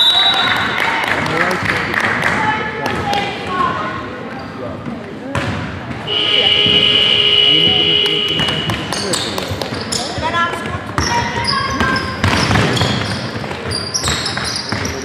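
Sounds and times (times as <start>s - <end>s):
voices: 0.3s - 15.0s
basketball bouncing: 5.3s - 7.1s, 7.7s - 15.0s
high-pitched signal tone: 6.1s - 8.8s.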